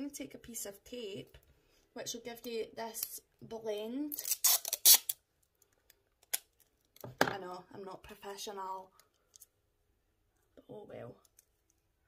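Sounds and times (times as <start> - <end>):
tape ripping off roll: 4.1 - 5.2.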